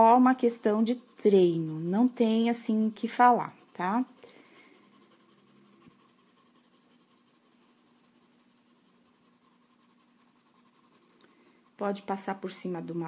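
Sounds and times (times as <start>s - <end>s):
pencil scratching on paper: 0.0s - 13.0s.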